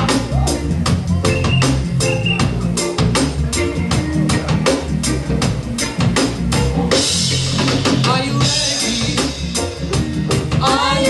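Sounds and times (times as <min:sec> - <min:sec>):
deep bass line: 0:00.0 - 0:11.0
drum kit beat: 0:00.0 - 0:11.0.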